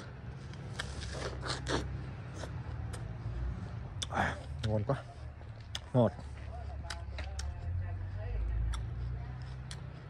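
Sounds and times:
apple crunching: 0.4 - 3.1
soft chewing clicks: 3.9 - 10.0.

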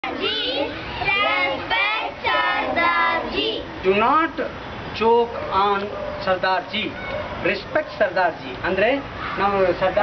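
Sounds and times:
children chanting in chorus: 0.0 - 3.7.

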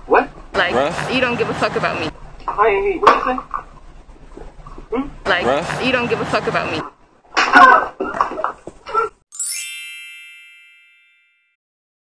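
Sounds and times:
metallic chime ding: 9.4 - 11.6.

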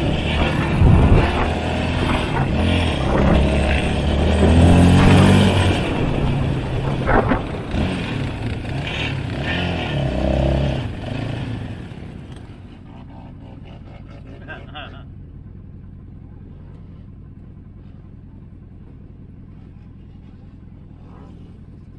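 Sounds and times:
atv engine under throttle: 0.0 - 21.9.

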